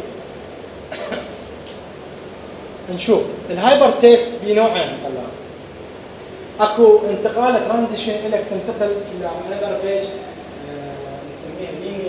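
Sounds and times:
person coughing: 0.9s - 1.4s.

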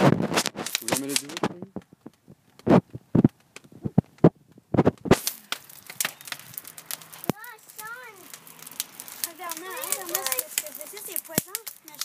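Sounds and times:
wood fire crackling and popping: 0.0s - 12.0s.

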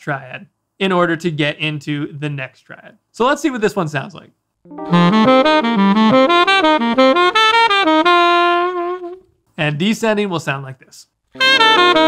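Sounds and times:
tenor saxophone arpeggios: 4.7s - 9.2s, 11.4s - 12.0s.

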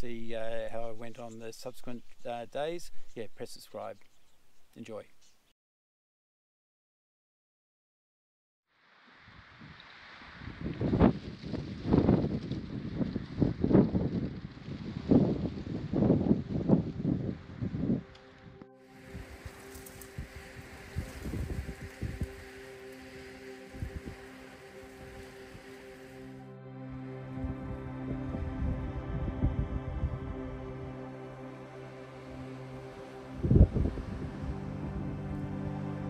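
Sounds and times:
wind buffeting microphone: 9.3s - 25.8s, 27.4s - 30.7s, 33.3s - 35.3s
ambient music: 16.3s - 36.0s
steady hiss: 18.9s - 26.4s.

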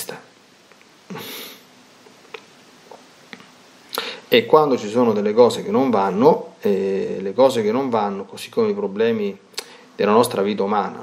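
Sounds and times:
man drawing a quick breath: 1.1s - 1.7s, 3.9s - 4.3s.

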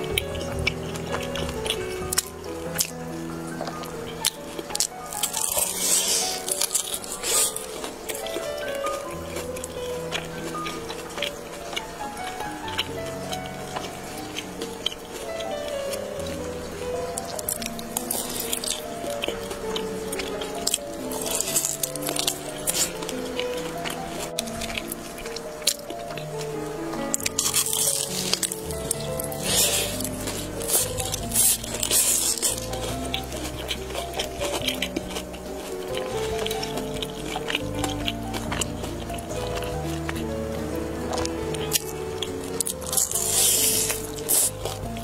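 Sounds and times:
background music sustained notes: 0.0s - 45.0s
chewing chicken mouth sounds: 0.0s - 45.0s.

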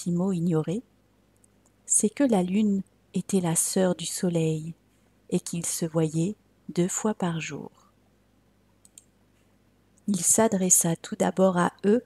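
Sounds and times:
faint short clicks: 8.8s - 9.2s.

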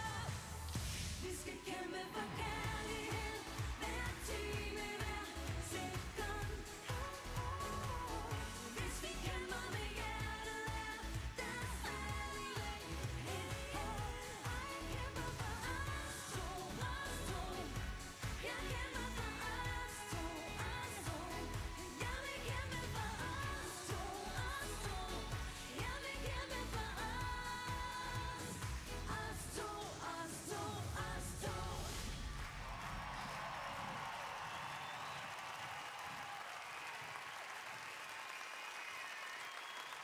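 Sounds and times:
women singing into microphones: 0.0s - 32.2s
dance-pop backing with beat: 0.0s - 32.7s.

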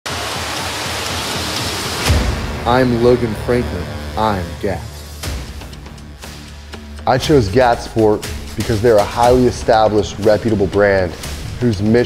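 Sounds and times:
low rumble: 2.0s - 8.8s.

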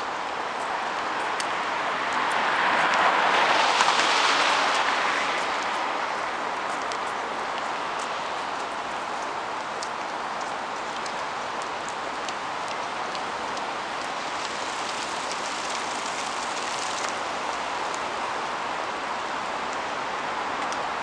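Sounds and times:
city street traffic: 0.0s - 21.0s.

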